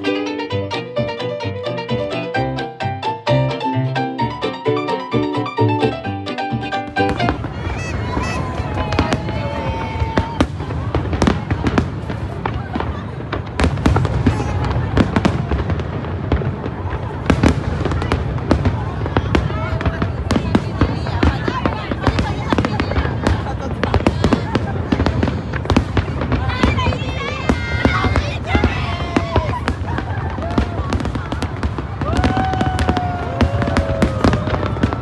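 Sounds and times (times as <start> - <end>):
fireworks bangs and crackles: 6.8 - 35.0.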